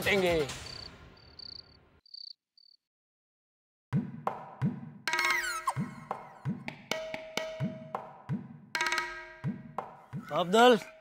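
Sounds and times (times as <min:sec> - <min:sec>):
music: 0:00.0 - 0:01.2, 0:04.0 - 0:11.0
crickets chirping: 0:00.6 - 0:02.8
sharp percussive knock: 0:04.0 - 0:10.4.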